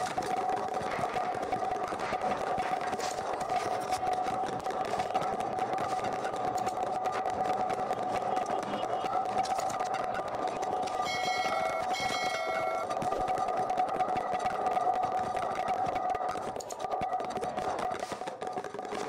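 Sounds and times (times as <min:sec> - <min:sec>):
short bell-like chimes: 0:11.0 - 0:12.8.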